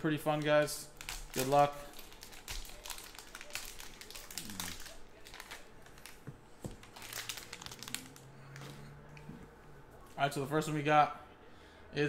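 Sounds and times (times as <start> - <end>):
foil pack tearing and crinkling: 0.3 - 6.2, 6.8 - 8.2.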